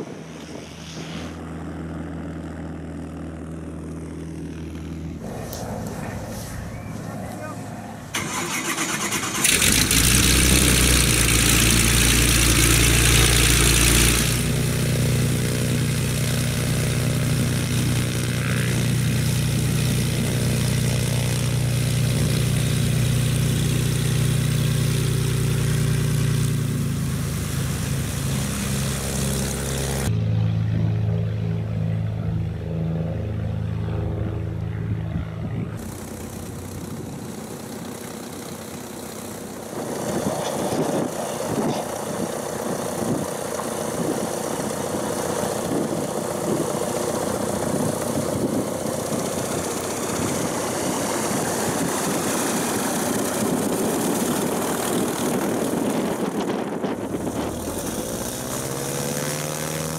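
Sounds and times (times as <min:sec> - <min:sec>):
propeller aircraft engine running: 0:00.0 - 0:59.9
loud rushing hiss: 0:23.2 - 0:30.1.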